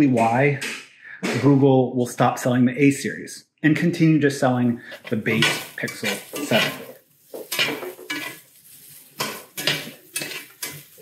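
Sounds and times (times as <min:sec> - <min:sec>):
metal spatula scraping skillet: 0:04.7 - 0:11.0.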